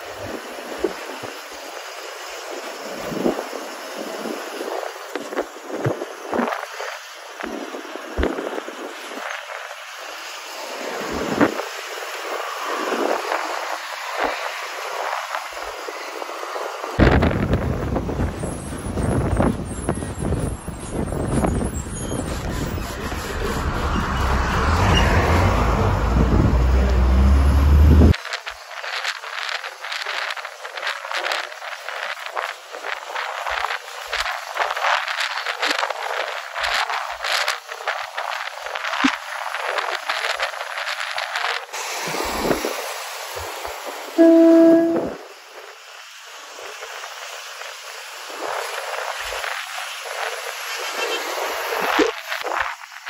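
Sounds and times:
bus road and wind noise: 0.0s - 53.0s
deep rumble: 17.0s - 28.2s.

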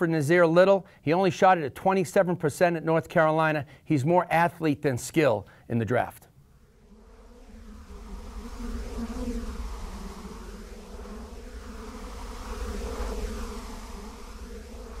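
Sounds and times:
steady buzzing: 6.4s - 15.0s.

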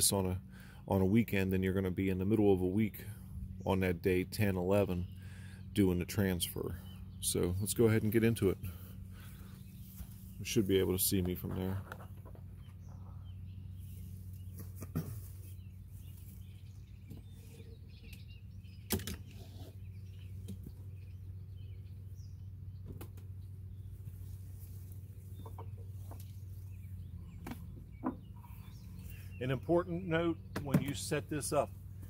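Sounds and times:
steady low hum: 0.0s - 32.0s
knocks and clacks of hive parts: 22.8s - 23.4s, 27.4s - 28.4s, 30.5s - 31.1s.

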